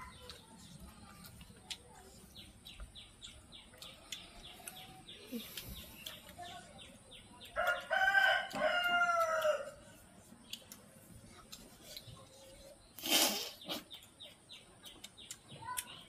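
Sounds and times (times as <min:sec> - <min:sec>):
rooster crowing: 0:07.6 - 0:09.8.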